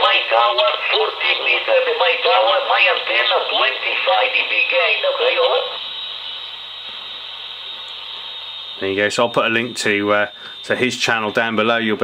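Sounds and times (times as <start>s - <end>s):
voice over radio speaker: 0.0s - 5.8s, 8.8s - 12.0s
receiver hiss: 0.0s - 12.0s.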